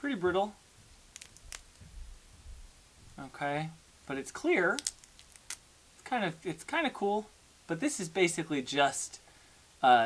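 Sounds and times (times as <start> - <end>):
sharp clicks of brittle sheet: 1.1 - 1.8, 4.7 - 5.6.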